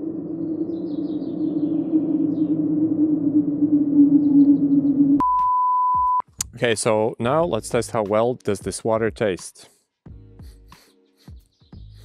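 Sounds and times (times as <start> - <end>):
low humming drone: 0.0 - 5.3
high test-tone beep: 5.2 - 6.2.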